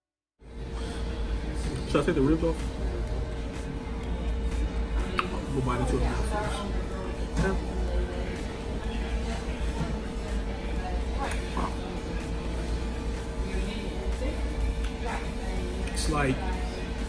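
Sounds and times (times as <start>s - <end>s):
background music: 0.4s - 17.0s
steady low hum: 0.4s - 17.0s
scattered voices: 1.1s - 17.0s.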